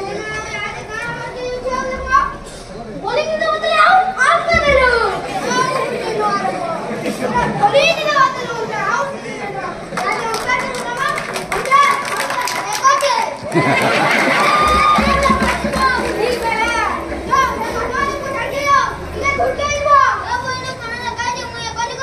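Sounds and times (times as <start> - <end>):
children shouting: 9.9 - 22.0.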